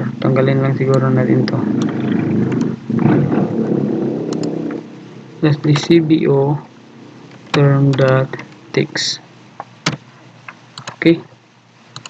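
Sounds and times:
computer keyboard clicks: 0:10.8 - 0:11.1.

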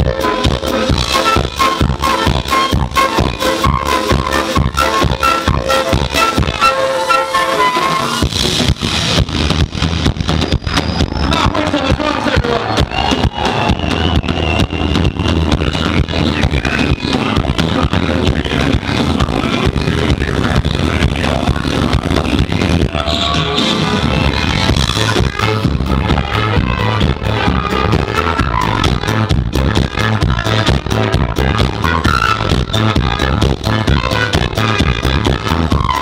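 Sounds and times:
drum beat: 0:00.0 - 0:06.8, 0:08.2 - 0:36.0
flute melody: 0:00.0 - 0:08.2, 0:10.3 - 0:17.6, 0:22.8 - 0:36.0
trumpet melody: 0:00.0 - 0:08.3, 0:22.7 - 0:36.0
heavy bass: 0:00.0 - 0:36.0.

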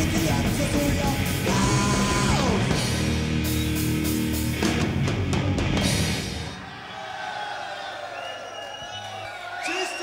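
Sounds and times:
concert crowd cheering and shouting: 0:00.0 - 0:10.0.

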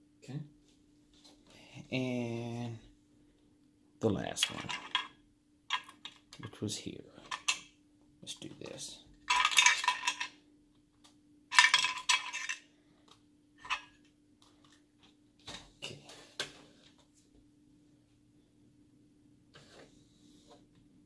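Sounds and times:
metal parts rattling in plastic case: 0:04.4 - 0:05.1, 0:05.7 - 0:06.5, 0:07.2 - 0:07.6, 0:09.3 - 0:10.4, 0:11.5 - 0:12.7.

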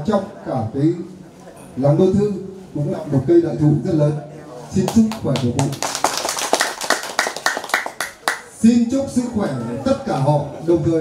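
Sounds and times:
people clapping: 0:04.8 - 0:08.5.

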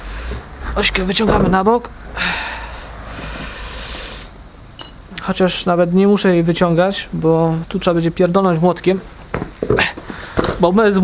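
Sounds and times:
steel axle scraping: 0:03.2 - 0:05.0.

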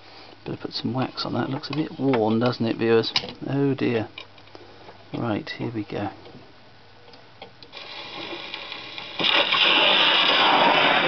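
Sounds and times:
record groove hiss: 0:00.0 - 0:11.0
record surface noise: 0:06.2 - 0:11.0.

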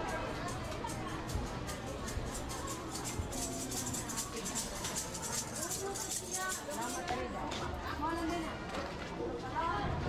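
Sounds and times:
indistinct chatter: 0:00.0 - 0:10.0
small clatter: 0:00.7 - 0:07.7.

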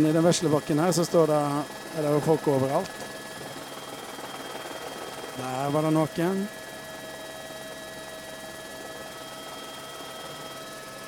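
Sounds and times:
aircraft engine drone in cabin: 0:00.0 - 0:11.0
faint whining tones: 0:06.4 - 0:11.0.

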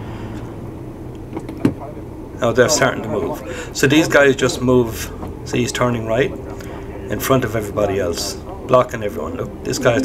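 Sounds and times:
engine idling: 0:00.0 - 0:10.0.

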